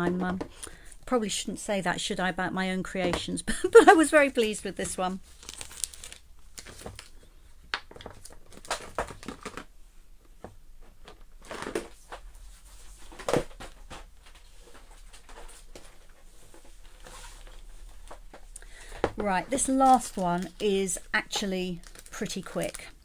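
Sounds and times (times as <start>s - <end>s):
paper rustling: 4.9s - 7.2s.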